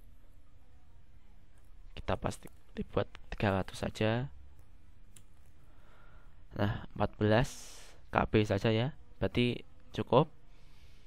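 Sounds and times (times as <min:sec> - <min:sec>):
faint background noise: 0:00.0 - 0:11.0
person speaking: 0:01.8 - 0:05.4.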